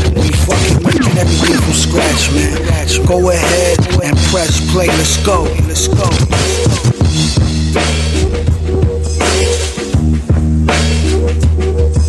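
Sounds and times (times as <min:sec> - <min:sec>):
hip-hop beat with deep bass: 0:00.0 - 0:12.0.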